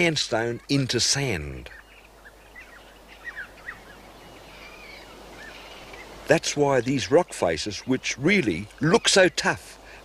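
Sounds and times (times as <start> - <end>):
outdoor background hiss: 0.0 - 10.0
small birds chirping: 0.0 - 10.0.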